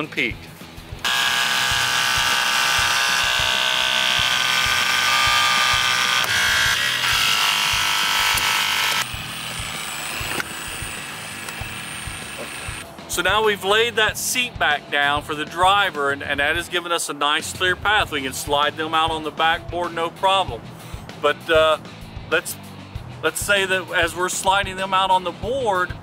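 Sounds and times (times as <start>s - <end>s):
hydraulic cutter pump whine: 1.0s - 12.8s.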